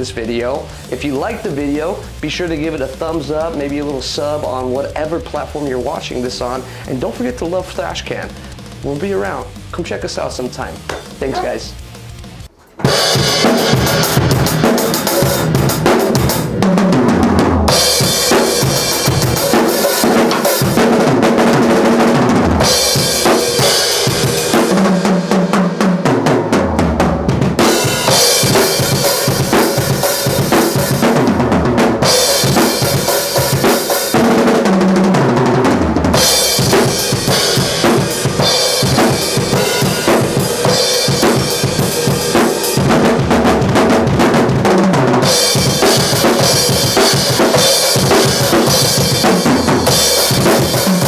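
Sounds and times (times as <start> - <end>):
drum kit played fast: 0.0 - 51.0.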